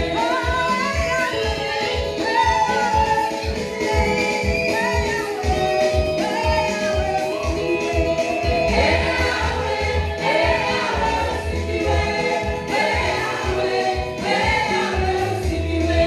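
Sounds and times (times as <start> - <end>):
amplified accompaniment with beat: 0.0 - 16.0
backing singers: 0.0 - 16.0
woman singing into microphone: 0.0 - 16.0.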